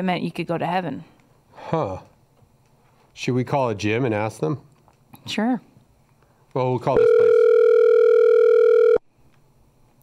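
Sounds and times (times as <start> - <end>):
telephone line tone: 7.0 - 9.0.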